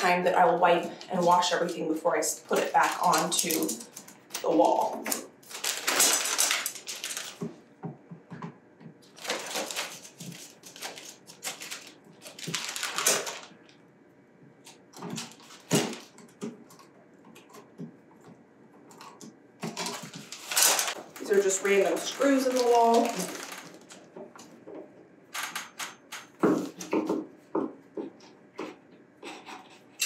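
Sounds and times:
plastic zipper bag crinkling: 0.7 - 7.5, 9.0 - 13.7, 15.1 - 16.2, 19.7 - 24.2.

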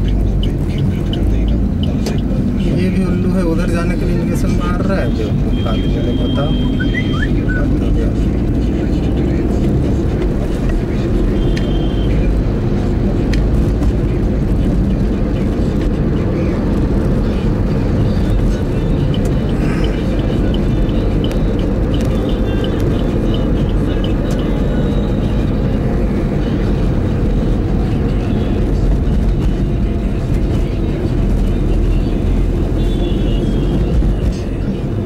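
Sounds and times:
car engine and tyres rumbling: 0.0 - 35.0
faint voices: 4.2 - 32.6.

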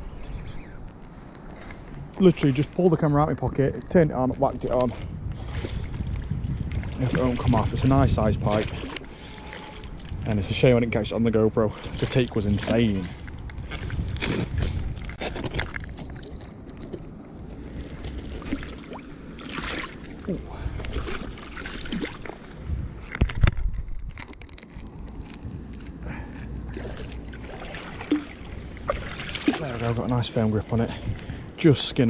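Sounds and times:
fish splashing in water: 17.8 - 22.6, 26.7 - 30.0.

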